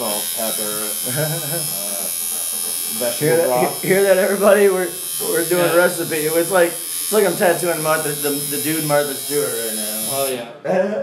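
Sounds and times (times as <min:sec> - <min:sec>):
electric tattoo machine buzzing: 0:00.0 - 0:10.4.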